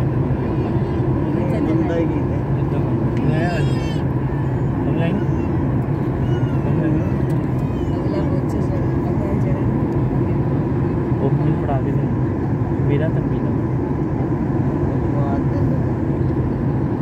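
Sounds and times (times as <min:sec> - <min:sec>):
airliner cabin engine drone: 0:00.0 - 0:17.0
passengers talking: 0:00.0 - 0:17.0.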